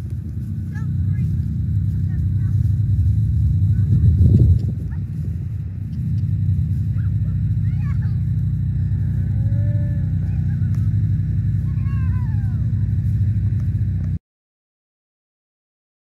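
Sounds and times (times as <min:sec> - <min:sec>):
steady low rumble: 0:00.0 - 0:14.2
cattle mooing: 0:01.6 - 0:13.0.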